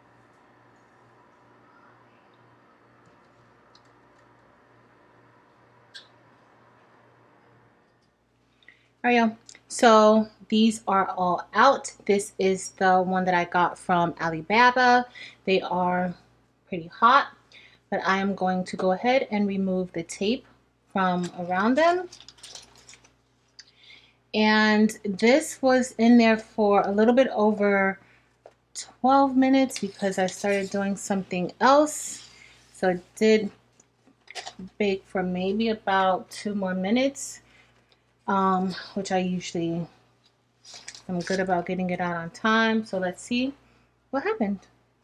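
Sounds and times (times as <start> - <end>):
oven hum: 0.0 - 8.3.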